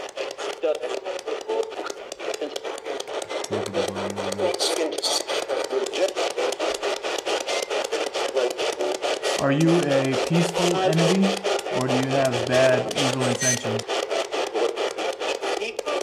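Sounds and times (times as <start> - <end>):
radio static sweeping: 3.3 - 7.6, 8.2 - 13.9
low hum-like radio fragment: 3.5 - 4.8.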